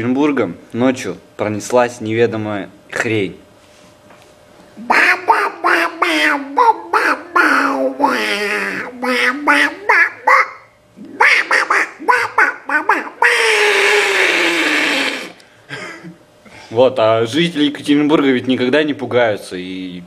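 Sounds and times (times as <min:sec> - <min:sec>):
boy making nonsense syllables: 0:04.8 - 0:15.4
boy's long falling cry: 0:13.3 - 0:15.4.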